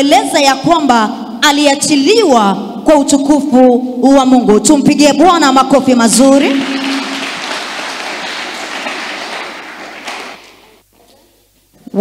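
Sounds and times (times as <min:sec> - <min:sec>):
congregation applauding: 0:06.4 - 0:10.8.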